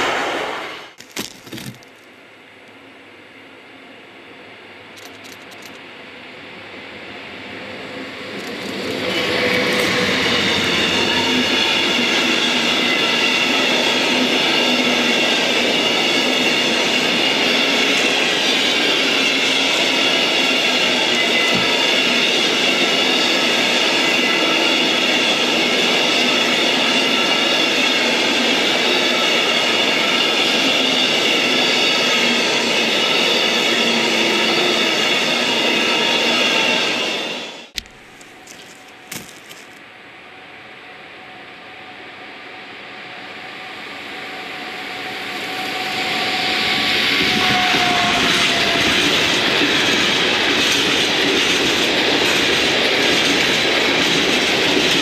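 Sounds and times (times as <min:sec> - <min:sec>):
freight train passing: 0:00.0 - 0:01.0, 0:01.9 - 0:55.0
wheels ringing on rails: 0:04.9 - 0:41.2, 0:43.2 - 0:55.0.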